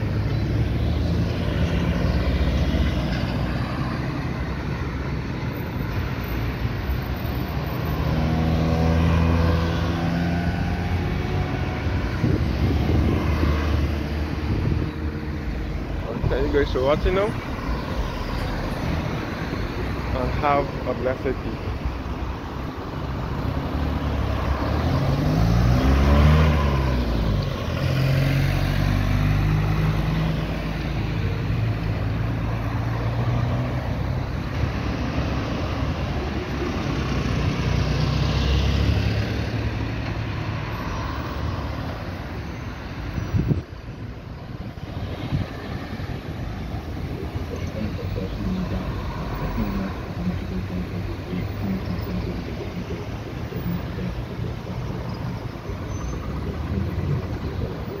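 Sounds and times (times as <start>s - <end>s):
cars driving past: 0.0s - 58.0s.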